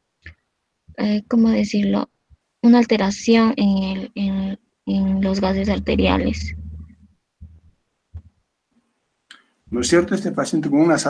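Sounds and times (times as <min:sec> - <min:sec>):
faint low thumps: 0:03.7 - 0:08.4.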